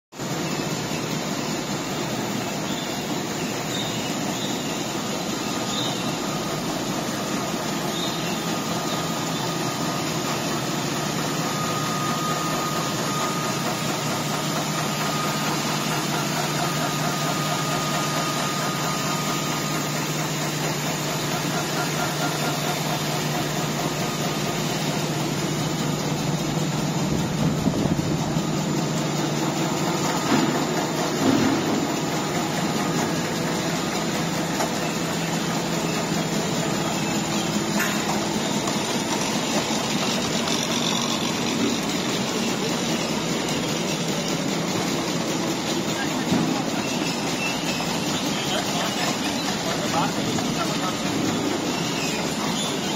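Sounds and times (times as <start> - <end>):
paper cutting machine droning: 1.0 - 52.9
loud mechanical knocks: 13.2 - 52.9.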